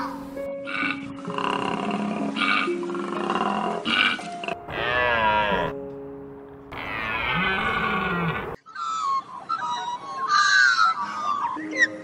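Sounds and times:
deer bleating: 0.7s - 5.8s, 6.7s - 8.6s.

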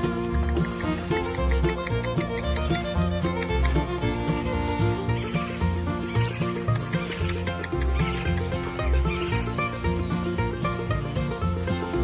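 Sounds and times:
country instrumental music with steady beat: 0.0s - 12.0s.

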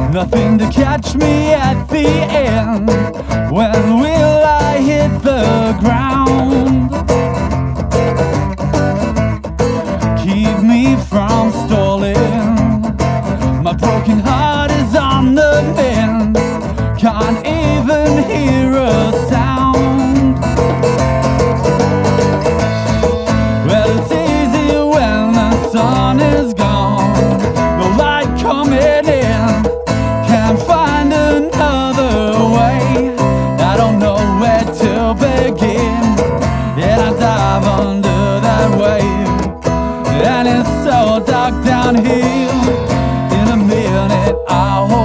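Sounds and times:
drums and cymbals: 0.0s - 45.0s
guitar: 0.0s - 45.0s
live band playing: 0.0s - 45.0s.

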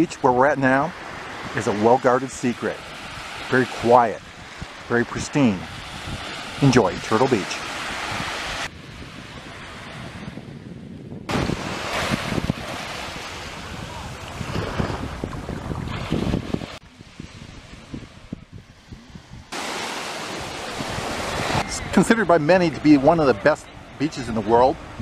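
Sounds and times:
waves washing ashore: 0.0s - 10.7s, 11.3s - 25.0s
wind buffeting microphone: 0.8s - 25.0s.

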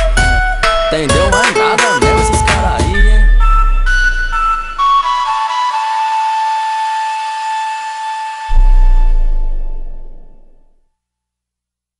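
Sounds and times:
held synth lead note: 3.4s - 10.8s.

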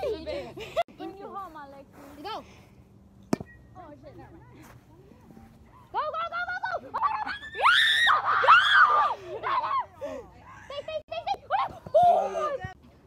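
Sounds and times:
people shouting and screaming: 6.8s - 10.0s, 11.4s - 12.8s.

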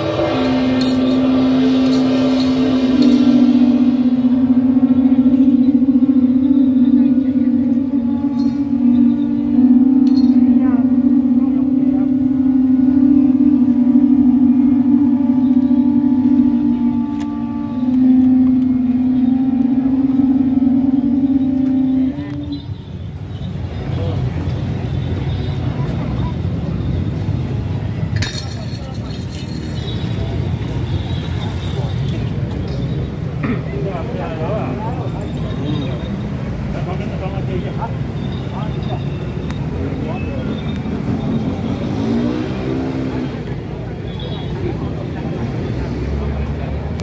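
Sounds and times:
brass horns droning: 0.0s - 47.0s.

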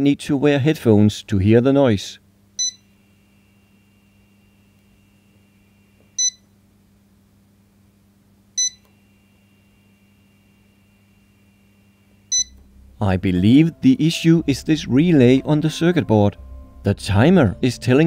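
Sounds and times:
microwave keypad beeping: 2.6s - 2.9s, 6.2s - 6.4s, 8.6s - 8.9s, 12.3s - 12.6s.

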